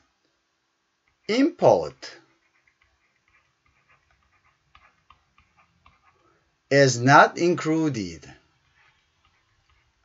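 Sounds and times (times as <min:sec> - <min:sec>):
stylus scratching on digital board: 0:01.1 - 0:06.3, 0:08.2 - 0:10.0.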